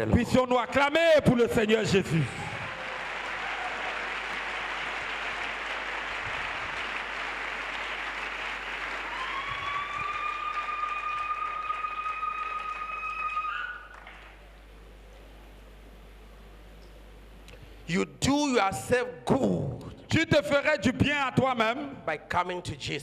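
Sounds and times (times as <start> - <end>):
congregation clapping: 2.1 - 14.7.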